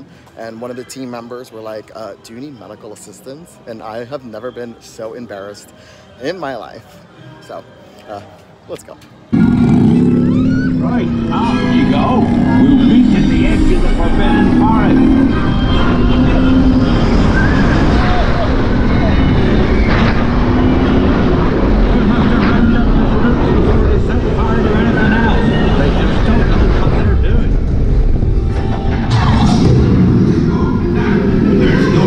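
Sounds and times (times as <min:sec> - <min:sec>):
ride music: 0:03.6 - 0:32.0
faint voices: 0:08.0 - 0:28.1
coaster train rumbling on track: 0:09.4 - 0:32.0
wind rushing over microphone: 0:12.2 - 0:32.0.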